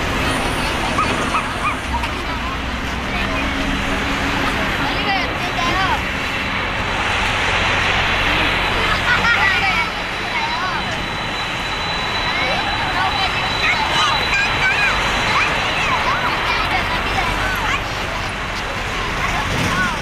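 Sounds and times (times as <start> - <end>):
jet engines roaring: 0.0 - 20.0
people's voices: 0.0 - 20.0
thin high whine: 6.8 - 18.4.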